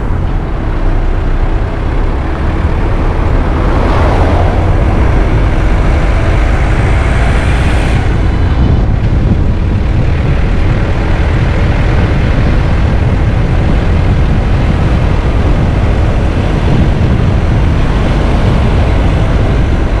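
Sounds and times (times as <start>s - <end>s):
car engine rumble: 0.0s - 20.0s.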